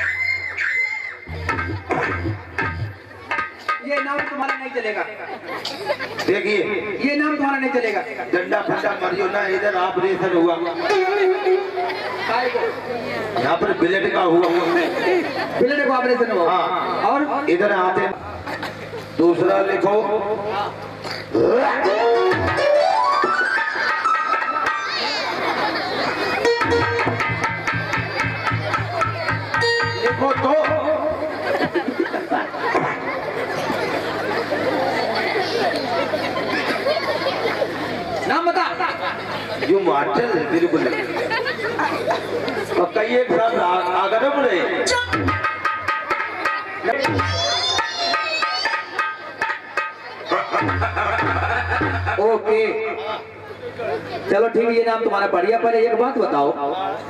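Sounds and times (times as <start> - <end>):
crowd chattering: 0.0 - 57.0
men talking: 3.8 - 22.6, 30.0 - 33.2, 38.2 - 44.8.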